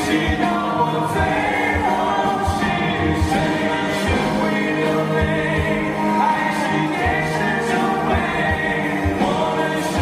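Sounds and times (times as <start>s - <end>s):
male vocal group singing: 0.0s - 10.0s.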